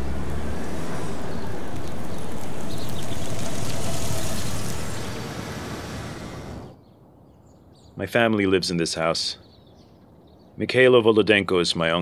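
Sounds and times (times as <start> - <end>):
car driving by: 0.0 - 6.8.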